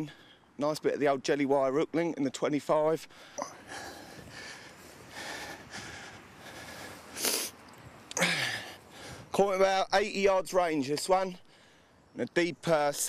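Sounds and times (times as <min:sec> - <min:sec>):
faint hiss: 0:03.0 - 0:09.4
man breathing and sniffing: 0:03.1 - 0:09.3.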